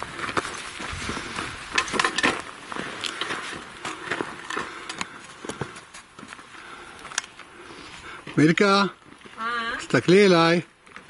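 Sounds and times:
footsteps on gravel: 0:00.0 - 0:09.4.

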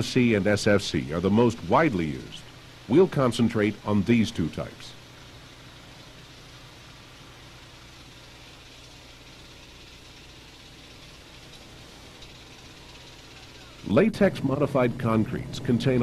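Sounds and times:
videotape hiss: 0:00.0 - 0:16.0.

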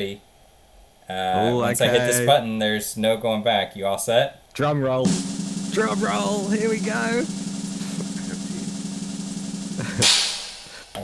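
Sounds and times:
drum roll: 0:05.0 - 0:10.8
cymbal crash: 0:05.1 - 0:10.8.

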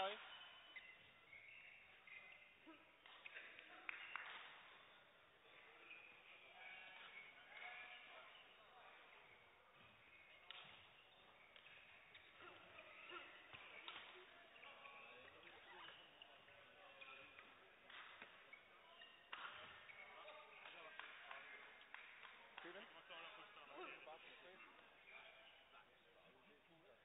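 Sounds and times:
faint voices echoing in a hall: 0:00.0 - 0:27.0.

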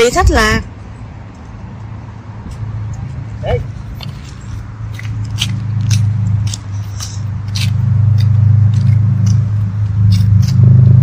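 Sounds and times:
steady low hum: 0:00.0 - 0:11.0
footsteps on paved path: 0:00.3 - 0:11.0.

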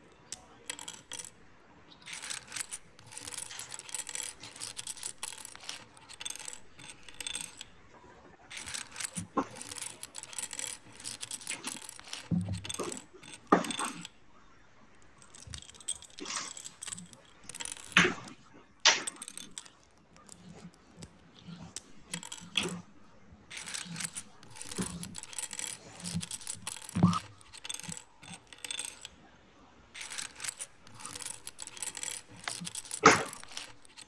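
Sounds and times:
plastic bricks rattling and clicking: 0:00.0 - 0:29.2, 0:29.9 - 0:34.0.

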